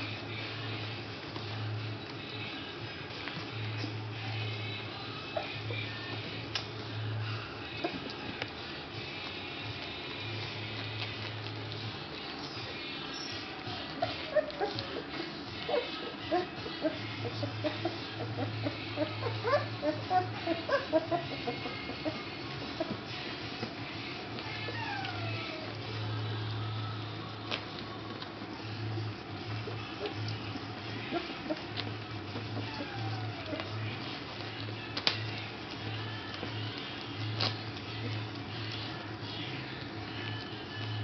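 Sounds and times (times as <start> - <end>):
puppies lapping food: 0.0 - 41.0.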